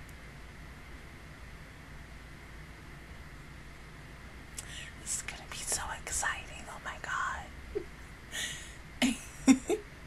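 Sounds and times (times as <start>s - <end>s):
woman whispering: 4.6s - 7.6s.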